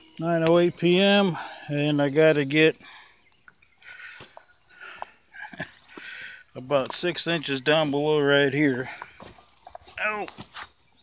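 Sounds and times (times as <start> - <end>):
faint footsteps on clay: 4.1 - 11.0.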